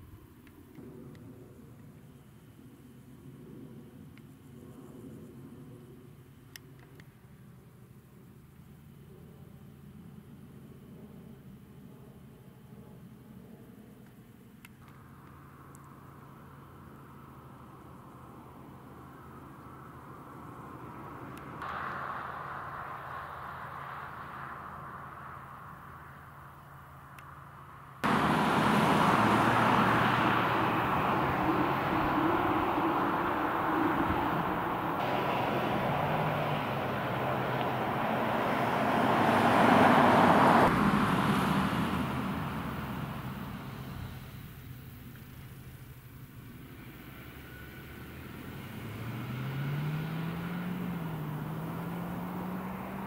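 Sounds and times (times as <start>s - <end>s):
tyre and engine noise: 14.8s - 53.0s
distant car engine accelerating: 16.4s - 44.8s, 46.4s - 53.0s
car driving past: 19.8s - 44.5s, 46.6s - 53.0s.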